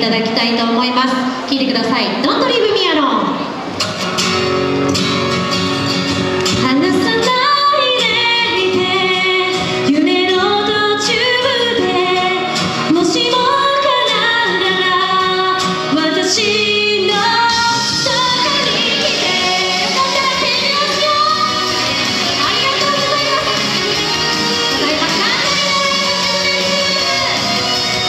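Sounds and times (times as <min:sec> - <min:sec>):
amplified backing music: 0:03.4 - 0:28.0
woman singing into microphone: 0:06.5 - 0:28.0.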